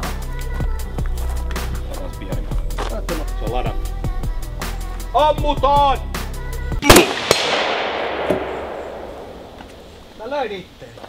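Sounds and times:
background music: 0:00.0 - 0:09.9
loud rifle shot echoing: 0:06.8 - 0:09.9.

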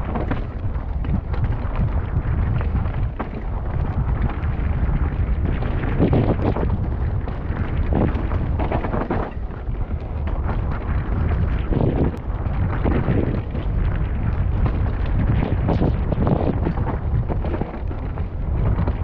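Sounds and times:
bike knocking and rattling: 0:00.0 - 0:19.0
wind on microphone: 0:00.0 - 0:19.0.

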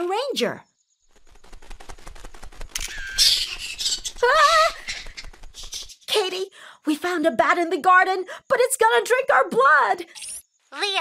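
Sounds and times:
fast small clicks: 0:01.0 - 0:06.1.

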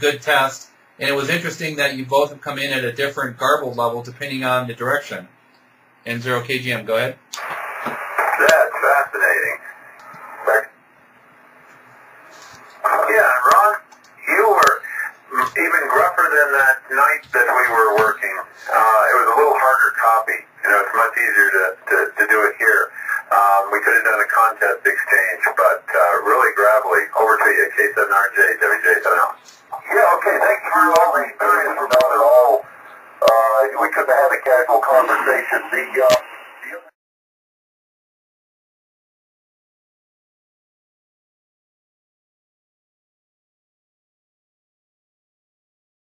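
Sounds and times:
radio receiver hiss: 0:07.3 - 0:36.9
voice over the radio: 0:08.2 - 0:10.7, 0:12.8 - 0:37.0.

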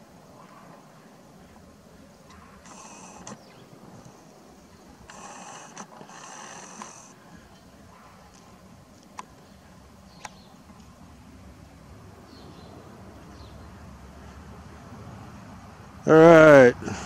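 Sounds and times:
small clicks: 0:02.3 - 0:03.4, 0:05.0 - 0:07.1
camera zoom motor whirring: 0:02.4 - 0:03.4, 0:05.0 - 0:07.1.

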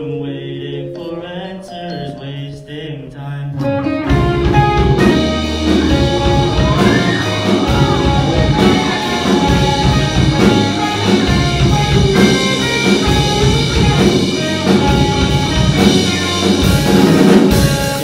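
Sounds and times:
person singing: 0:00.0 - 0:18.0
rock band playing: 0:03.6 - 0:18.0.

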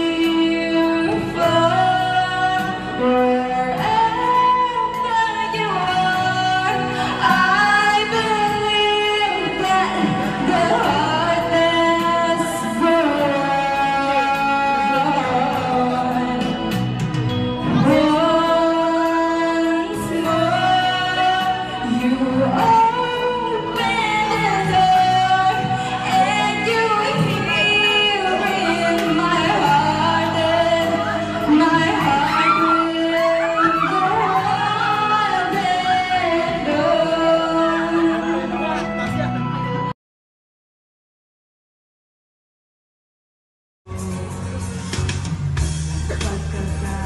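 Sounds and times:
woman singing a long note: 0:17.6 - 0:38.8.

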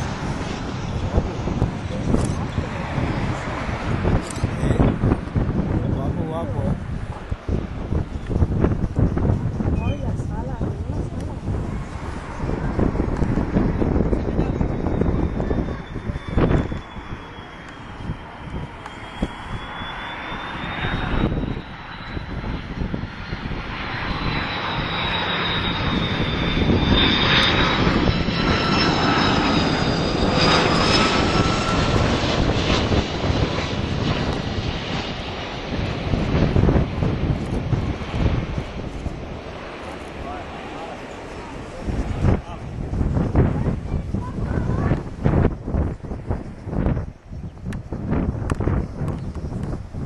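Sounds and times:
jet engines whining: 0:00.0 - 0:50.0
low aircraft rumble: 0:00.0 - 0:50.0.

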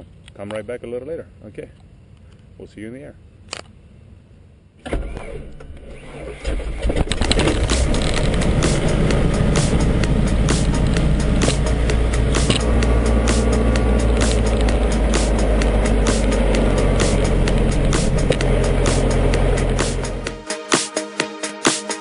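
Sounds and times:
piston aircraft engine starting and idling: 0:04.8 - 0:20.4.

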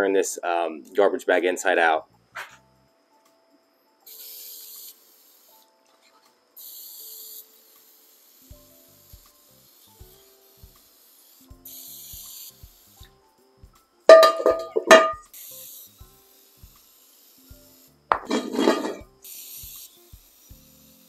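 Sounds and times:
faint background music with beat: 0:00.0 - 0:21.0
aerosol can spraying: 0:04.0 - 0:13.3, 0:14.1 - 0:21.0
cast iron skillet clanking: 0:14.1 - 0:15.2, 0:18.1 - 0:19.0.

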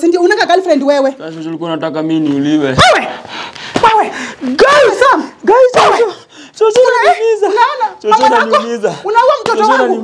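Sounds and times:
people shouting: 0:02.8 - 0:03.2, 0:03.8 - 0:10.0.

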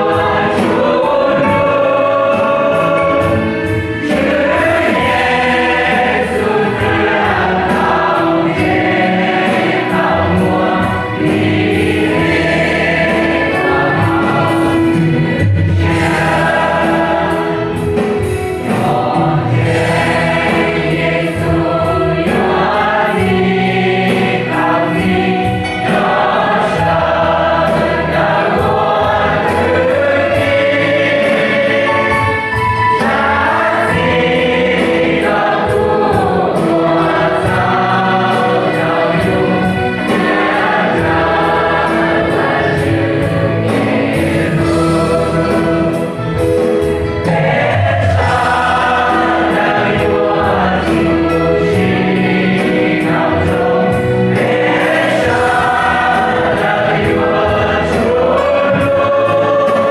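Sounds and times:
mixed choir singing a hymn: 0:00.0 - 0:59.9.

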